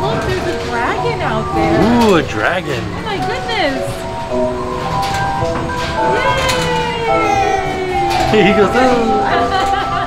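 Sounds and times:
carousel music: 0.0 - 10.0.

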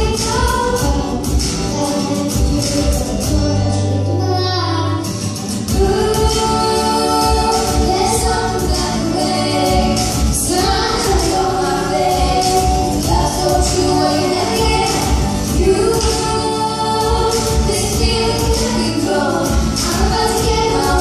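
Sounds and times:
music with steady beat: 0.0 - 3.8, 5.0 - 21.0
woman and girl singing: 0.0 - 5.1, 5.7 - 21.0.

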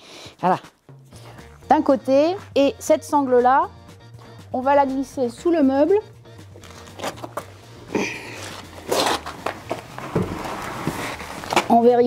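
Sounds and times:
quiet background music: 0.0 - 12.0
strap scraping on concrete floor: 6.6 - 12.0.

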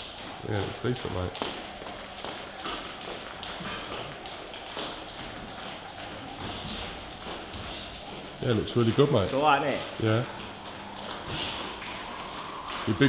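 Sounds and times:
skipping rope tapping hard floor: 0.0 - 13.0.

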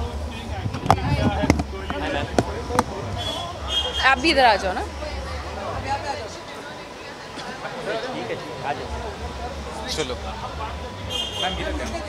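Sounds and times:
low chatter: 0.0 - 12.0.

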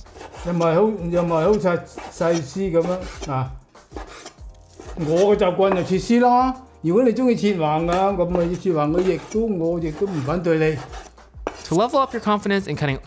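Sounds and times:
cleaver slicing on wooden board: 0.0 - 6.2, 7.8 - 12.2
man speaking: 11.7 - 13.0.

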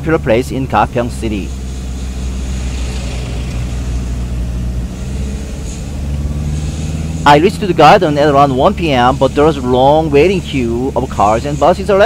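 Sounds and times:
engine and road hum: 0.0 - 12.0.

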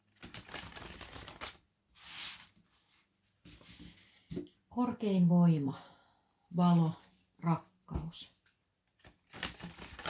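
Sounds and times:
cards being shuffled: 0.2 - 2.6.

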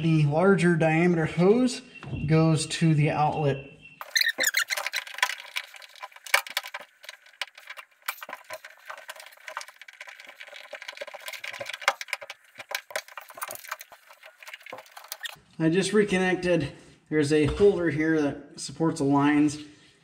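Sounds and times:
small metal clicks and rattles: 4.0 - 15.4.

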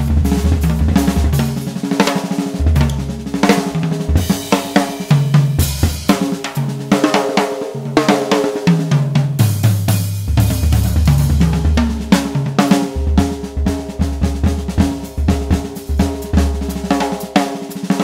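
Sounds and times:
bass drum: 0.0 - 1.7, 2.4 - 6.2, 9.4 - 17.3
drum kit solo: 0.0 - 18.0
snare drum: 0.0 - 18.0.

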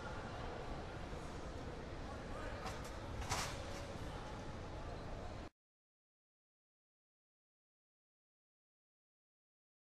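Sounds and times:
distant indistinct voices: 0.0 - 5.5.

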